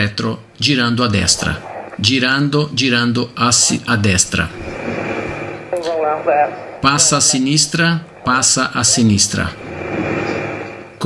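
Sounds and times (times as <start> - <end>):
radio hiss: 0.7 - 11.0
person speaking over radio: 5.7 - 8.8.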